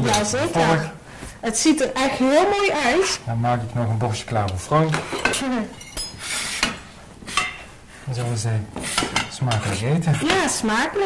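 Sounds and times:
cutlery clinking on a plate: 0:04.9 - 0:06.8, 0:08.9 - 0:10.5.

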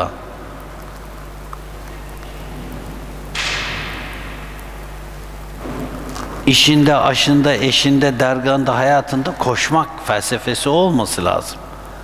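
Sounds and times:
electrical hum: 0:00.0 - 0:12.0.

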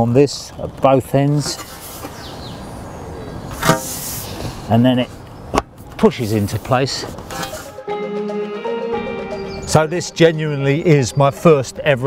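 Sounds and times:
faint handling rustle: 0:00.8 - 0:02.3, 0:03.5 - 0:07.7
metal bar scraping glass: 0:03.6 - 0:04.4, 0:07.3 - 0:07.7.

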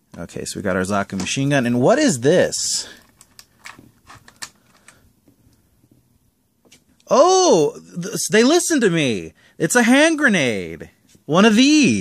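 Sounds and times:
small plastic parts clicking: 0:03.0 - 0:05.0.

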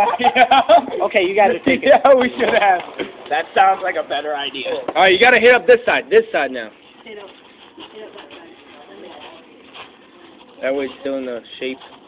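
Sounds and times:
faint background talk: 0:02.4 - 0:12.0.

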